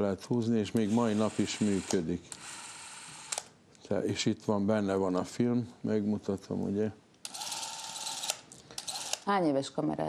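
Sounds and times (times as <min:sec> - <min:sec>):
clockwork camera whirring: 0:00.8 - 0:03.6, 0:07.2 - 0:09.3.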